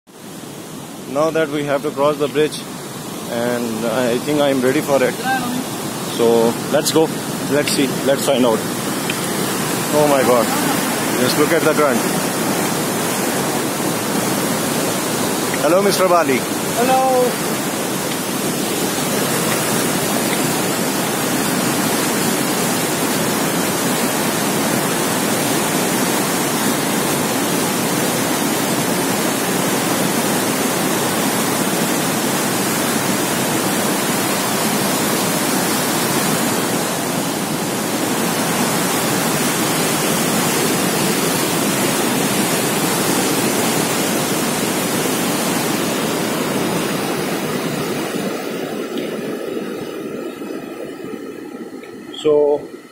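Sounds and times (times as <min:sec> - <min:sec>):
white-water river rushing: 0:00.2 - 0:51.1.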